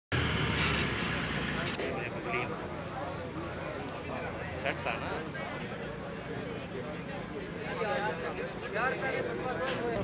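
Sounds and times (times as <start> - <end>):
vehicle engine rumble: 0.1 - 4.5
people's voices: 0.4 - 10.0.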